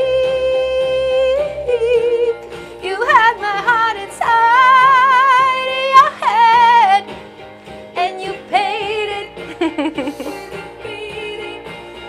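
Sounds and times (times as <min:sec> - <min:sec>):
woman singing with vibrato: 0:00.0 - 0:07.1, 0:08.0 - 0:09.5, 0:10.5 - 0:11.8
keyboard accompaniment: 0:00.0 - 0:12.0.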